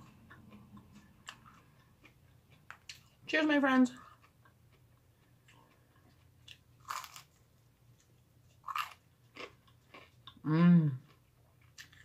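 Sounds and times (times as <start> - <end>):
crisp crunches of chewing bread: 4.0 - 10.4.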